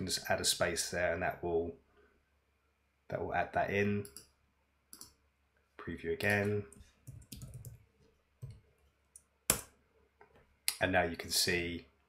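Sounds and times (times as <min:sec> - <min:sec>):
computer keyboard keystrokes: 0:07.1 - 0:07.8.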